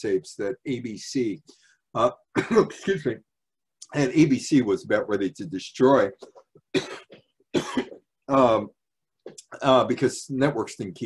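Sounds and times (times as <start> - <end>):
man coughing: 2.3 - 3.2, 6.8 - 8.0.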